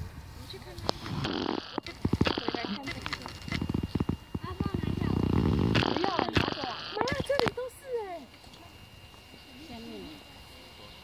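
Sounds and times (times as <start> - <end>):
faint steady high tone: 5.8 - 11.0.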